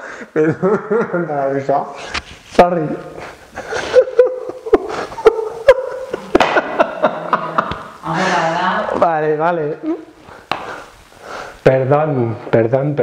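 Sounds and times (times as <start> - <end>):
man laughing: 0.1 - 1.6, 3.2 - 9.0, 9.7 - 10.1.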